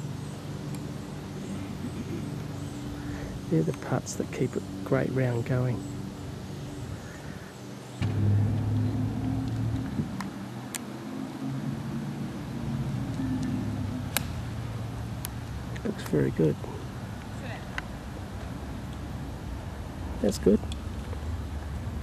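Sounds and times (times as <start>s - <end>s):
low engine hum: 0.0s - 22.0s
golf ball struck click: 14.1s - 14.4s.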